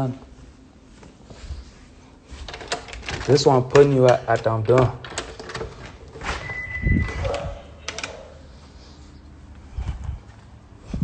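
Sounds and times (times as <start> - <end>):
short high squeak: 6.4 - 7.3
door latch and handle clicks: 7.2 - 8.2.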